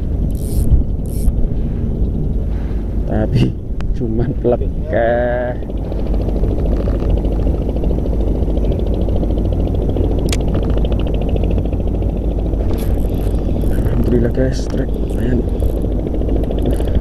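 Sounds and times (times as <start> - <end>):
choppy sea water: 0.0 - 17.0
wind buffeting microphone: 0.0 - 17.0
fishing reel ticking: 0.2 - 1.3, 5.8 - 7.8, 12.6 - 17.0.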